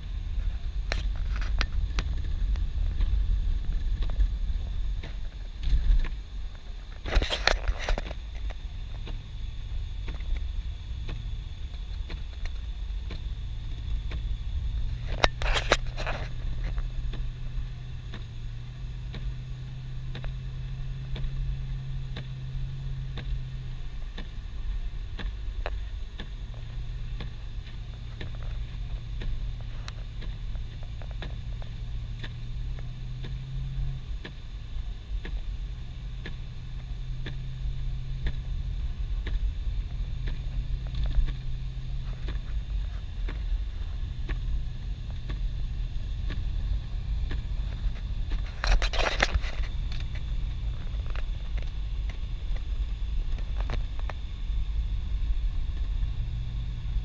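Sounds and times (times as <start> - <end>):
low engine hum: 0.0 - 57.0
road rumble: 0.0 - 57.0
faint ticks: 9.9 - 54.4.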